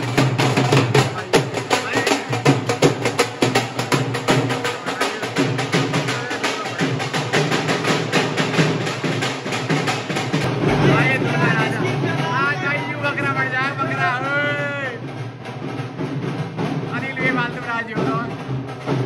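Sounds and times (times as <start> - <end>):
barrel drums beating fast rhythm: 0.0 - 19.0.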